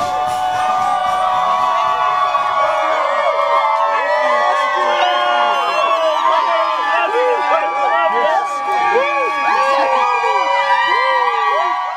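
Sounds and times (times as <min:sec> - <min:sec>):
crowd cheering and whooping: 0:00.0 - 0:11.9.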